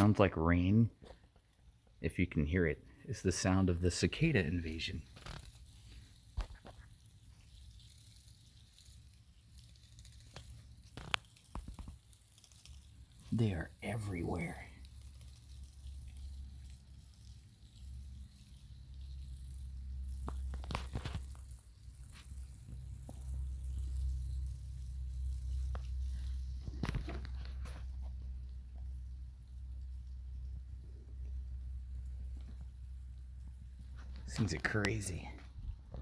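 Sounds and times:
insects crawling over dry leaves: 0.0s - 36.0s
low steady rumble: 12.8s - 36.0s.

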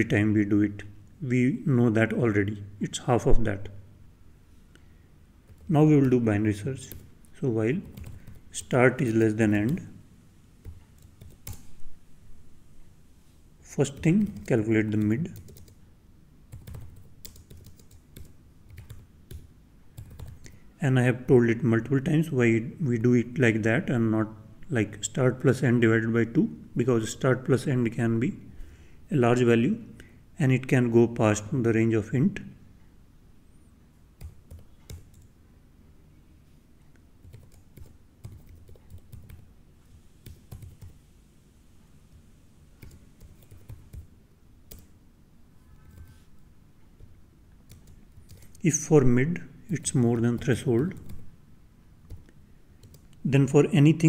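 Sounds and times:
computer keyboard typing: 6.8s - 7.1s, 7.8s - 9.9s, 10.6s - 11.7s, 13.8s - 15.8s, 16.5s - 20.6s, 34.2s - 35.3s, 37.2s - 39.5s, 40.2s - 41.0s, 42.8s - 44.1s, 44.7s - 44.9s, 45.8s - 46.2s, 47.0s - 48.6s, 52.0s - 53.1s.

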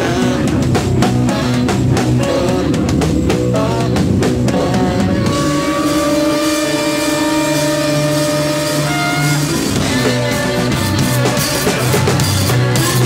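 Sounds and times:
heavy instrumental band music: 0.0s - 13.0s.

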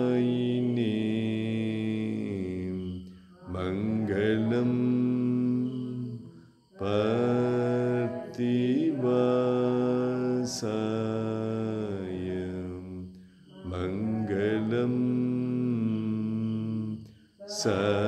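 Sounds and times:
person chanting melodic verses: 0.0s - 18.0s.

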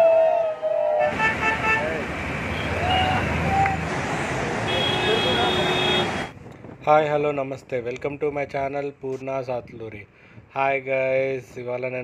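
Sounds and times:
vehicle horn tooting: 1.0s - 3.2s, 4.7s - 6.3s.

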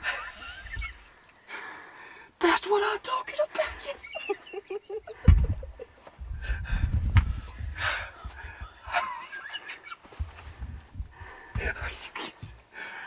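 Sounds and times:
heavy breathing: 0.0s - 2.4s, 5.0s - 9.2s, 10.2s - 13.0s
breath puffs thumping microphone: 5.0s - 9.1s, 10.1s - 12.7s.

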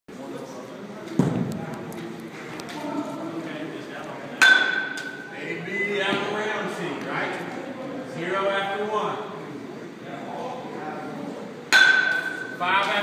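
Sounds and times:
metal bat striking ball: 4.4s - 5.3s, 11.7s - 12.6s.

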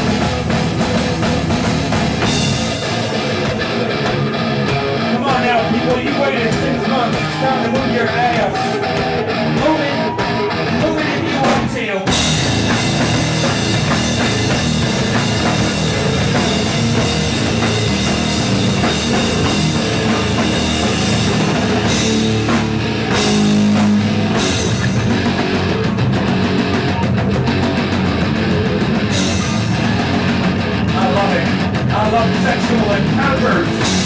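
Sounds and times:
bass guitar: 0.0s - 34.0s
distorted electric guitar: 0.0s - 34.0s
drum kit: 0.0s - 34.0s.

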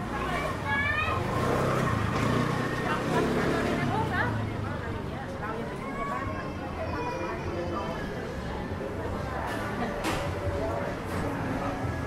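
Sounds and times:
street chatter: 0.0s - 12.0s
scooter engine running: 1.1s - 4.7s.

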